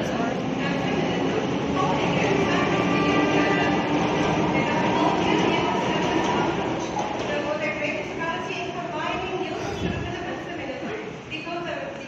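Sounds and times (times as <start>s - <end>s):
loud rumbling noise: 0.0s - 11.4s.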